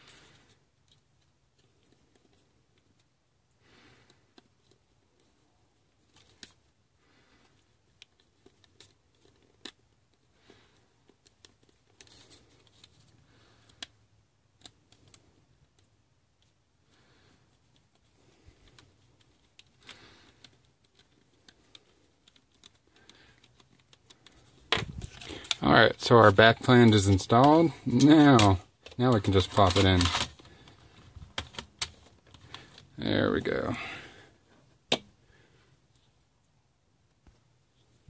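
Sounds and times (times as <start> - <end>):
handling rustles: 14.5 - 33.9.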